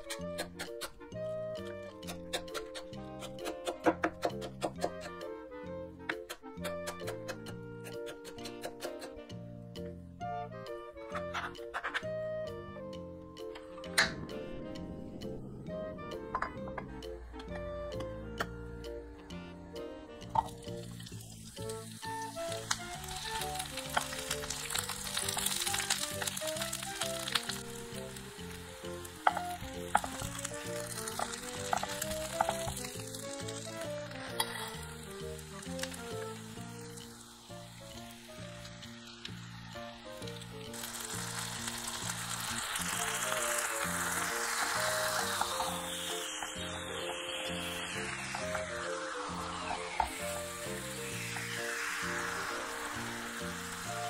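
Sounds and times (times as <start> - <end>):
soft background music: 0.0 - 54.0
sharp clicks: 6.2 - 9.2
onions sizzling in oil: 20.0 - 54.0.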